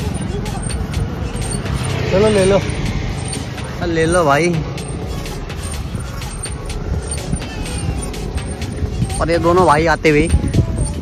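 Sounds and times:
low road rumble: 0:00.0 - 0:11.0
wind buffeting microphone: 0:00.0 - 0:11.0.

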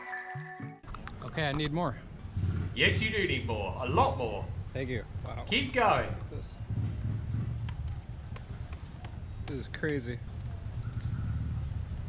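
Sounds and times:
low outdoor rumble: 0:00.9 - 0:12.0.

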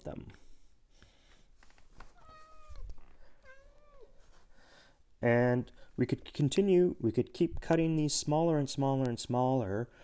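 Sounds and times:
cat meowing: 0:02.1 - 0:04.2.

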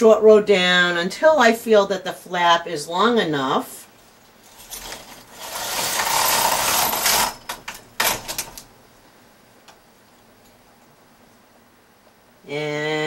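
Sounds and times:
knitting machine carriage swishing: 0:04.4 - 0:08.4.

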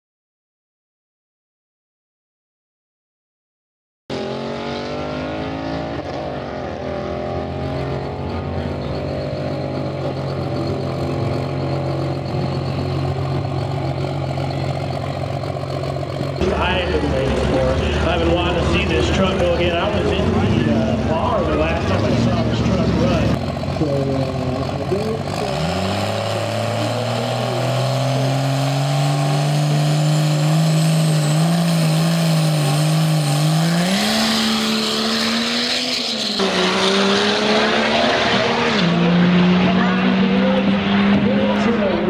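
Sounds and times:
diesel truck engine revving: 0:04.1 - 0:42.0.

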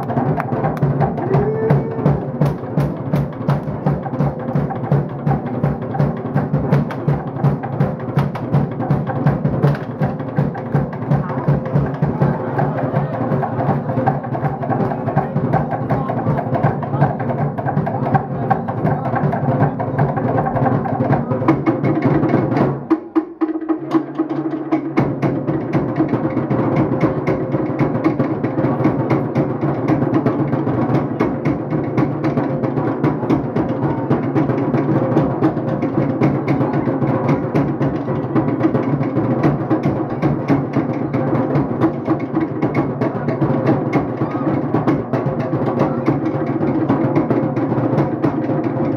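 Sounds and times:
fast driving drum music: 0:00.0 - 0:48.9.

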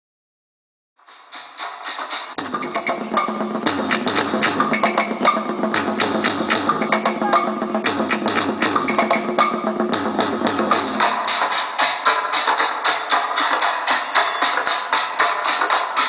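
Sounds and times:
drums: 0:01.0 - 0:16.0
fast wooden percussion: 0:01.1 - 0:16.0.

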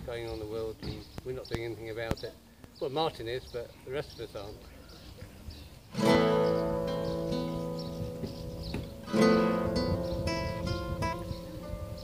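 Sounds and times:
acoustic guitar strummed and picked: 0:05.9 - 0:12.0.

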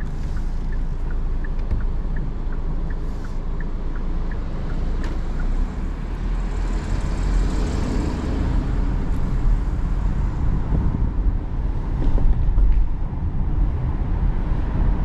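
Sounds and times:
faint ticks: 0:00.0 - 0:05.6
car engine low rumble: 0:00.0 - 0:15.0
tyre and road hiss: 0:02.9 - 0:03.6.

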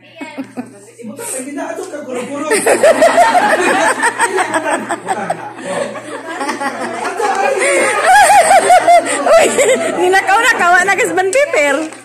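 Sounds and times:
person laughing: 0:02.5 - 0:09.9.

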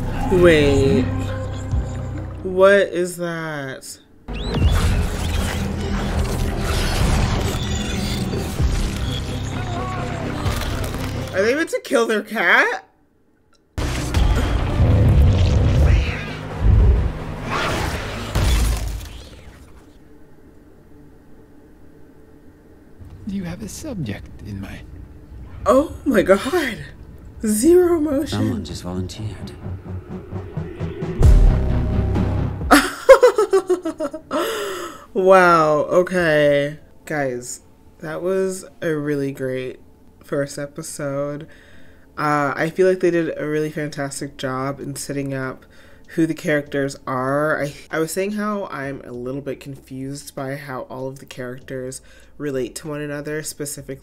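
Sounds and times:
dark mechanical sound effects: 0:04.3 - 0:11.4, 0:13.8 - 0:20.2, 0:23.0 - 0:32.6
low held score tone: 0:28.3 - 0:32.6
woman laughing: 0:32.7 - 0:34.9.

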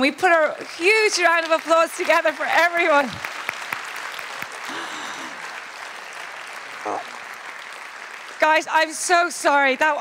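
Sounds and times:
audience applauding: 0:00.3 - 0:09.8.

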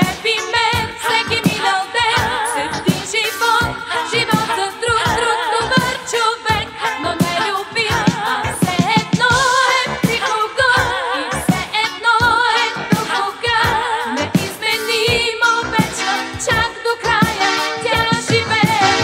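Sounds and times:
band accompaniment: 0:00.0 - 0:19.0
woman singing with vibrato: 0:00.0 - 0:19.0.

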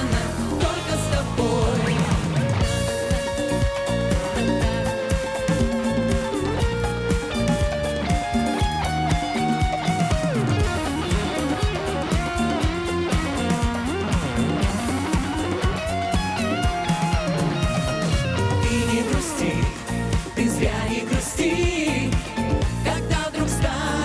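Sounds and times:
live band playing: 0:00.0 - 0:24.0
pitch-bending lead melody: 0:00.0 - 0:24.0.

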